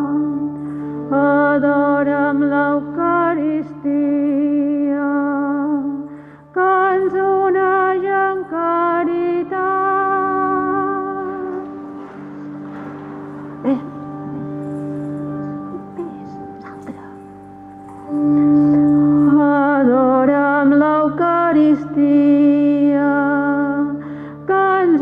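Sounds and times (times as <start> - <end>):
sustained accompaniment tones: 0.0 - 25.0.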